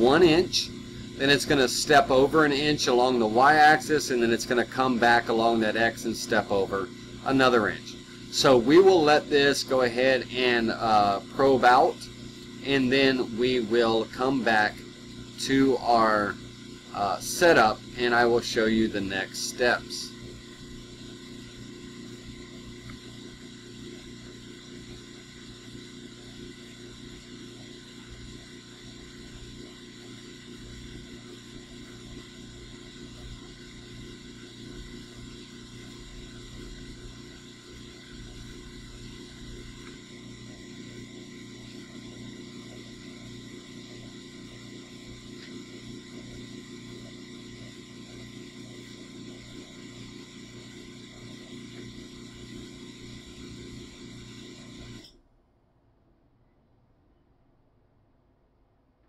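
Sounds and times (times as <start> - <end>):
machine motors humming: 0.0 - 55.1.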